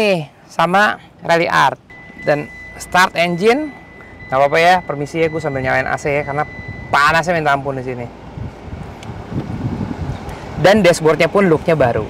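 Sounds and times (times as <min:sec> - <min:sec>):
diesel engine idling: 0:00.3 - 0:12.0
car air conditioning blowing: 0:01.2 - 0:12.0.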